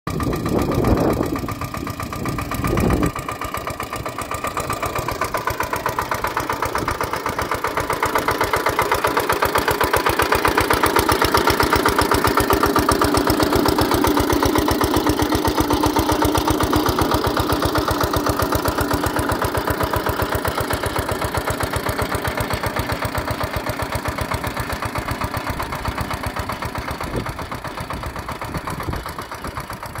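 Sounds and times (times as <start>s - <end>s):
small engine running under load: 0.1s - 30.0s.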